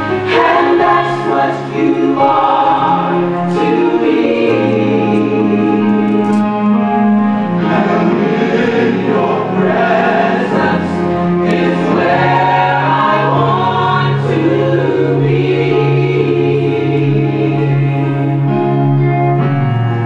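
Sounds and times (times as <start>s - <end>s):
gospel choir singing: 0.0s - 18.9s
sustained low chords: 0.0s - 20.0s.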